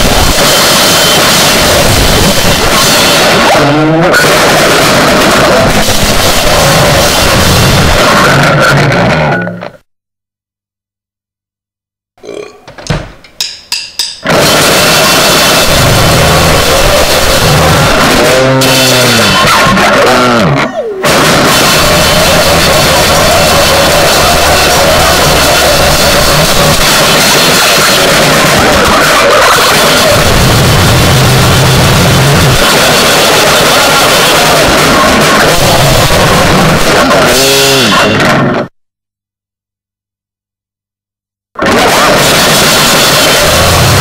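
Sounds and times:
distorted noisecore wall: 0:00.0 - 0:09.9, 0:12.2 - 0:38.7, 0:41.6 - 0:44.0
rough vocal sound: 0:01.8 - 0:09.8, 0:12.2 - 0:13.2, 0:15.7 - 0:27.5, 0:33.3 - 0:38.7
sharp hits: 0:12.8 - 0:38.3.

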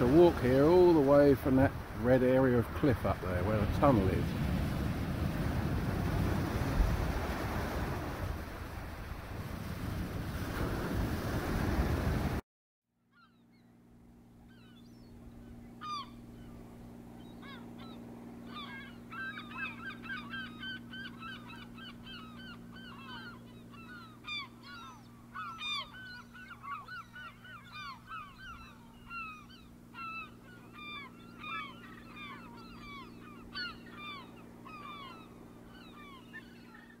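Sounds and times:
low steady hum: 0:00.0 - 0:10.8, 0:13.2 - 0:37.0
surf breaking: 0:00.0 - 0:12.4
wind on microphone: 0:03.5 - 0:12.4
flock of birds calling: 0:15.8 - 0:16.6, 0:17.2 - 0:37.0.

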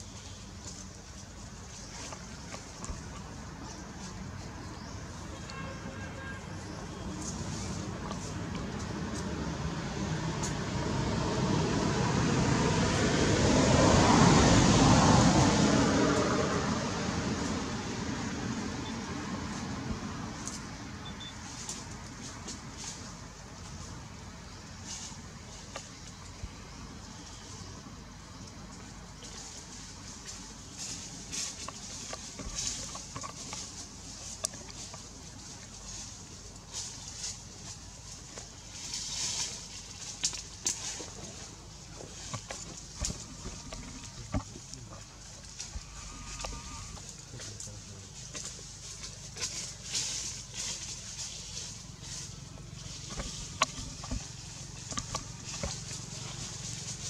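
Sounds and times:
leaves rustling: 0:00.0 - 0:57.0
faint animal calls: 0:45.6 - 0:47.5.

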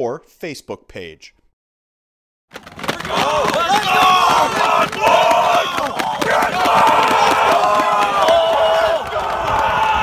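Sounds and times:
team shouting and chanting: 0:02.8 - 0:10.0.

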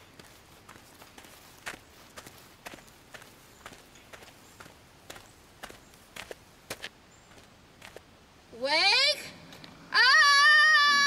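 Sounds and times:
steady low hiss: 0:00.0 - 0:11.0.

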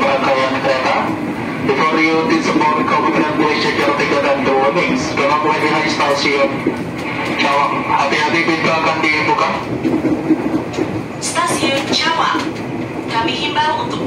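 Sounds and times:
voice announcement: 0:00.0 - 0:09.8, 0:11.2 - 0:14.0
train running interior: 0:00.0 - 0:14.0.

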